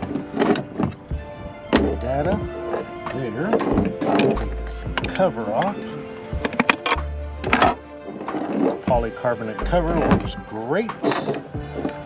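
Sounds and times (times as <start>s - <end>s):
equipment and cables knocking: 0.0s - 6.8s
background music: 0.0s - 12.0s.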